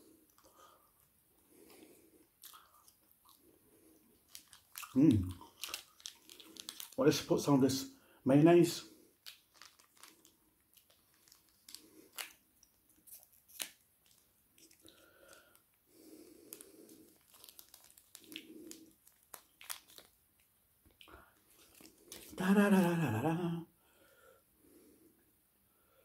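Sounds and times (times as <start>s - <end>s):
plastic sachet tearing and crinkling: 4.2s - 7.5s, 9.2s - 15.5s, 16.4s - 20.5s, 21.4s - 23.0s.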